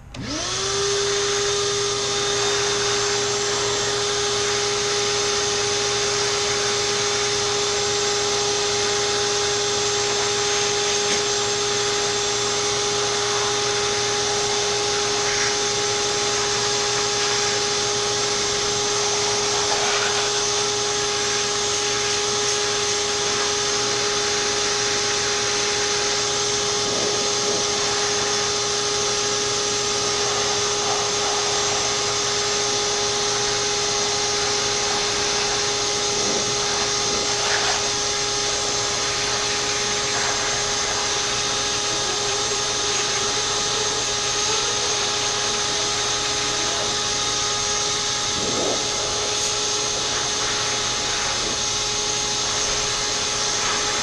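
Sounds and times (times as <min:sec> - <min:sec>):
shop vacuum blowing air: 0:00.0 - 0:54.0.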